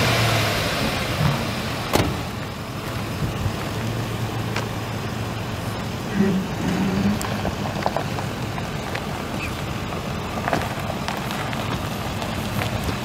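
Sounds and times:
pickup engine idling: 0.0s - 13.0s.

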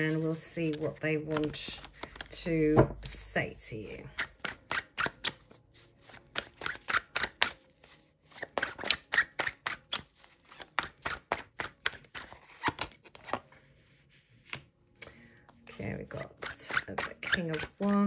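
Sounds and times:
cards being shuffled: 0.0s - 3.3s, 4.1s - 14.7s, 16.1s - 18.0s.

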